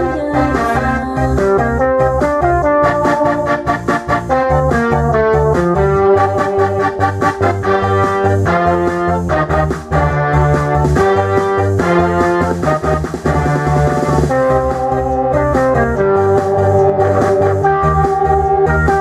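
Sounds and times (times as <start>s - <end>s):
instrumental karaoke backing track: 0.0s - 19.0s.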